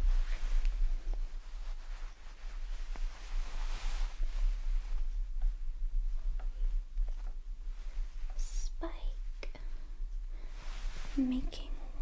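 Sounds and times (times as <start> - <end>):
faint rustling: 0.0 - 12.0
steady low hum: 0.0 - 12.0
soft whispering: 7.8 - 12.0.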